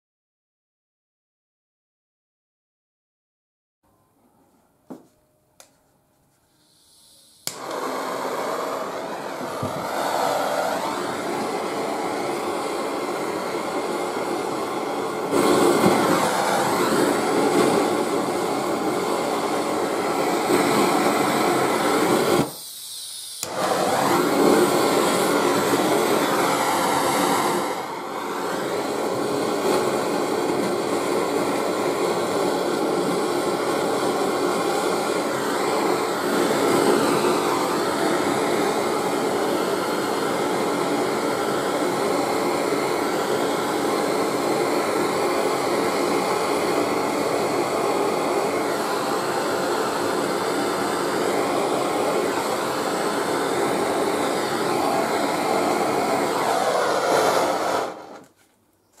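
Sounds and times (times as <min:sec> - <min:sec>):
blowtorch flame rushing: 0:06.6 - 0:58.4.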